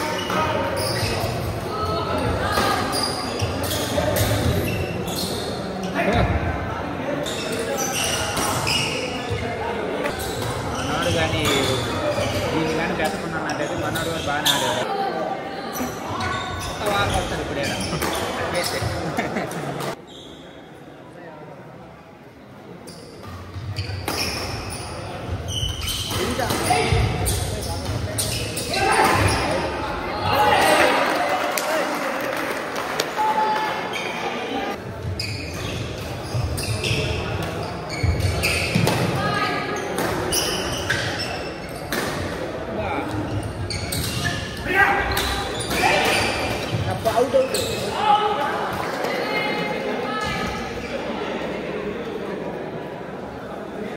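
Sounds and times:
people talking: 0:00.0 - 0:20.0, 0:36.5 - 0:53.9
voices echoing in hall: 0:00.0 - 0:53.9.

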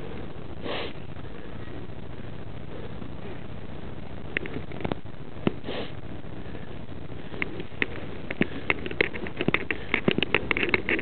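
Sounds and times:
background hiss: 0:00.0 - 0:11.0
breathy sniff: 0:00.6 - 0:01.0, 0:05.6 - 0:07.4.

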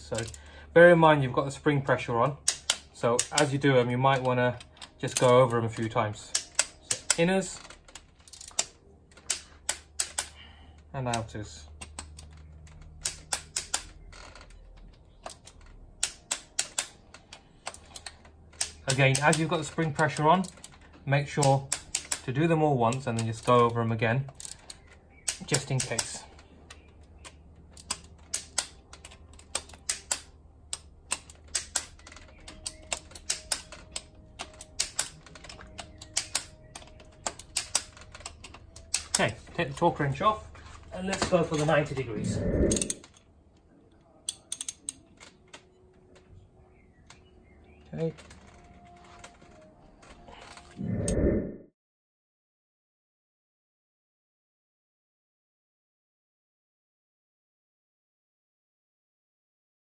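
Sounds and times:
torque wrench clicking: 0:02.4 - 0:03.5, 0:06.3 - 0:07.3, 0:24.4 - 0:39.2.

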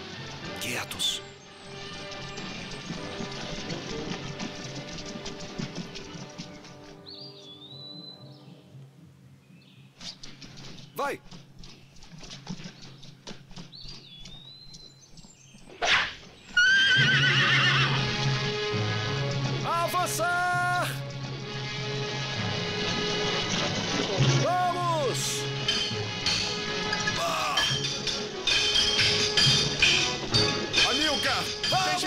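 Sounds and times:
orchestral film score: 0:00.0 - 0:08.6, 0:16.6 - 0:32.0
horses whinnying: 0:15.8 - 0:18.2.

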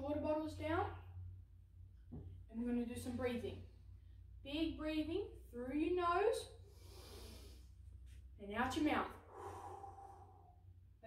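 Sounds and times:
breath out through mouth: 0:09.3 - 0:10.6.

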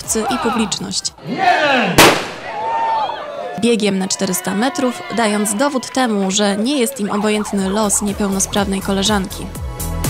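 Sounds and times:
people shouting: 0:00.1 - 0:07.4
starting pistol firing: 0:02.0 - 0:02.5.

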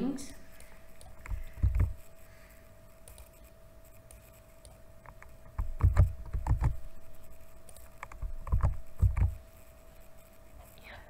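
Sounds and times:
faint steady hum: 0:00.0 - 0:11.0
computer keyboard keystrokes: 0:01.0 - 0:02.0, 0:04.1 - 0:06.8, 0:07.6 - 0:09.4.

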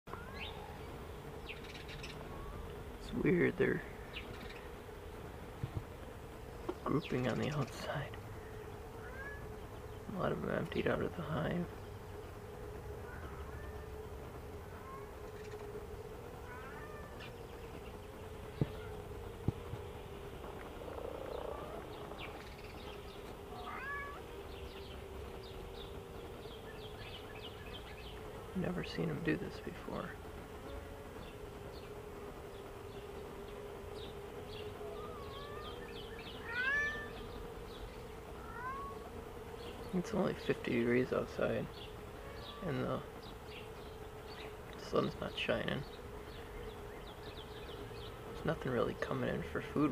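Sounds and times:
birds chirping: 0:00.1 - 0:49.9
honeybees humming: 0:00.1 - 0:49.9.

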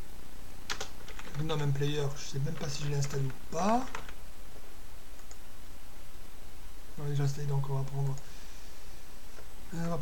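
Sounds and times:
low background hum: 0:00.0 - 0:10.0
computer mouse click: 0:05.2 - 0:05.4, 0:07.8 - 0:08.3.

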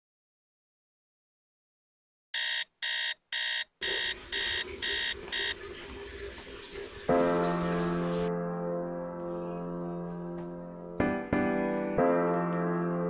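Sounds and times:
phone alarm beeping: 0:02.4 - 0:05.6
piano music: 0:07.0 - 0:13.0.

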